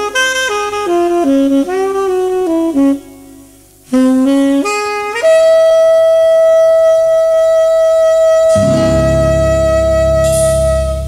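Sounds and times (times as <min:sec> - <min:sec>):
cymbal: 0:08.3 - 0:11.0
tenor saxophone note: 0:08.3 - 0:11.0
double bass: 0:08.4 - 0:11.0
guitar: 0:08.5 - 0:11.0.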